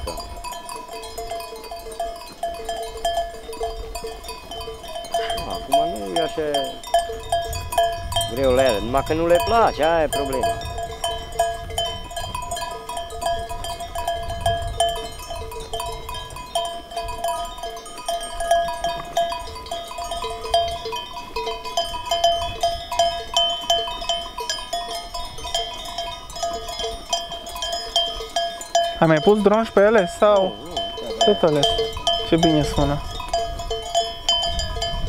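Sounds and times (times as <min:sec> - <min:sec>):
sheep bells clinking: 0:00.0 - 0:35.0.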